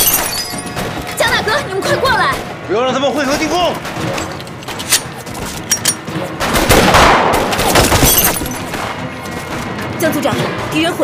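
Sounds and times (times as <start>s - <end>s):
gunfire shots: 6.4s - 9.0s.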